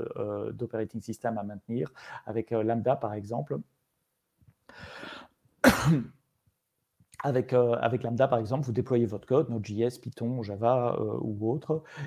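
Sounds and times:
soft breathy sound: 4.7 - 5.4, 11.8 - 12.0
man coughing: 5.6 - 6.2.

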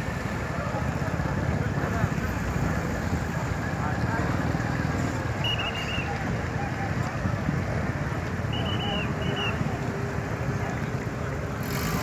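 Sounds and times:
ferry engines rumbling: 0.0 - 12.0
voices in background: 0.0 - 12.0.

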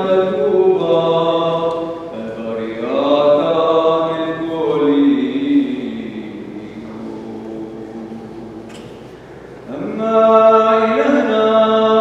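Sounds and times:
voices singing liturgical chant: 0.0 - 9.0, 9.7 - 12.0.

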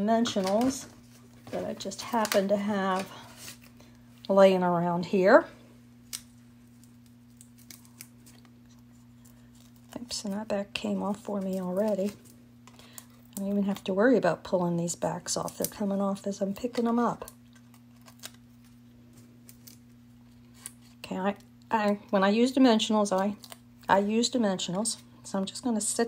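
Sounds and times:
steady low hum: 0.0 - 26.0
fingertips picking paper backing: 6.1 - 13.9.

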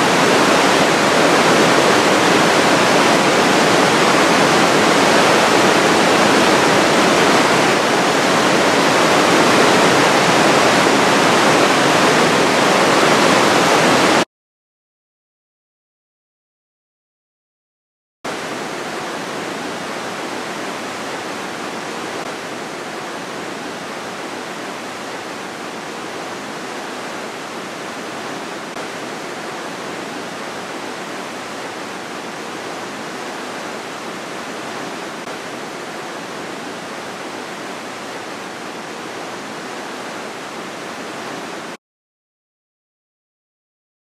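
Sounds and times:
river rushing through gorge: 0.0 - 14.2, 18.3 - 41.8.

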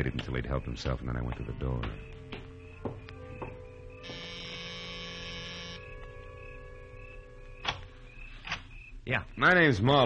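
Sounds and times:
door buzzer: 4.0 - 5.9.

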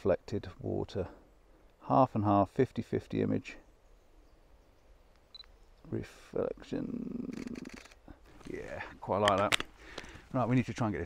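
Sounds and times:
camera click: 7.3 - 8.0.

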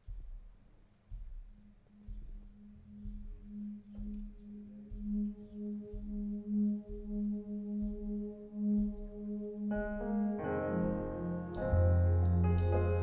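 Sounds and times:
faint low thuds: 0.0 - 13.0.

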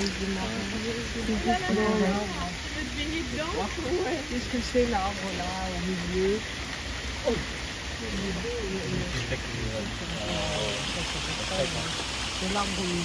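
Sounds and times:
rain falling on a pond: 0.0 - 13.0
voices talking: 0.0 - 13.0.

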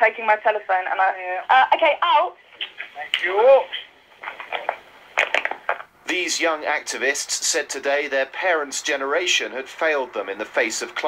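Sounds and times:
phone handling crackles and knocks: 4.2 - 5.9.

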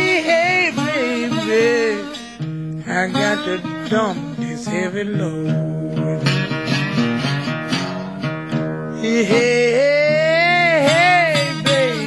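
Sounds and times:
acoustic blues guitar picking: 0.0 - 12.0.

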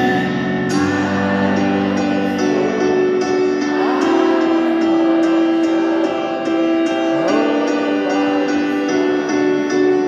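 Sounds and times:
piano chords over sound system: 0.0 - 10.0.

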